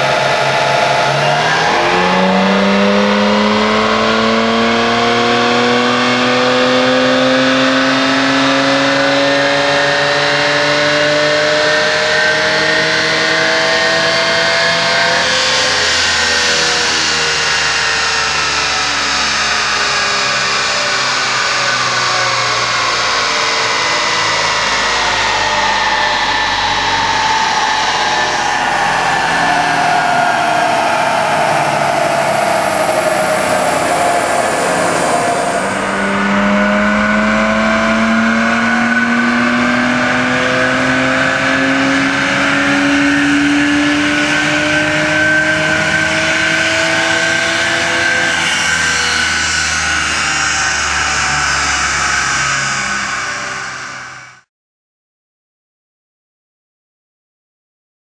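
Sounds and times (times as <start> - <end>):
dyno rollers winding down: 0.0 - 54.3
car engine revving on dyno: 0.0 - 54.5.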